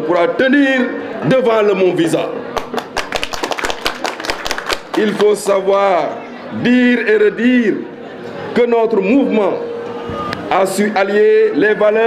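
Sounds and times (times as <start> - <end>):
people clapping: 2.5 - 5.9.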